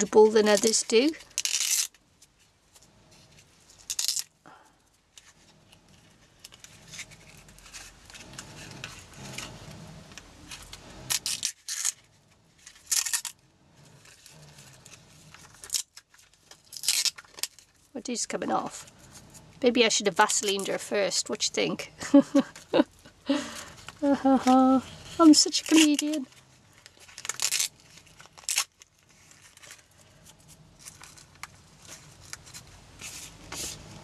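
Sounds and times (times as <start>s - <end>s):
cling wrap crinkling and tearing: 0.0s - 4.4s, 5.1s - 21.5s, 22.3s - 34.0s.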